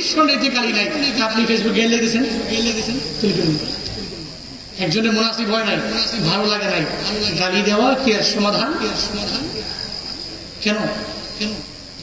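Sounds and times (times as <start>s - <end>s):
man speaking over microphone: 0.0s - 3.5s, 4.8s - 9.8s, 10.6s - 11.7s
high-pitched whine: 0.0s - 12.0s.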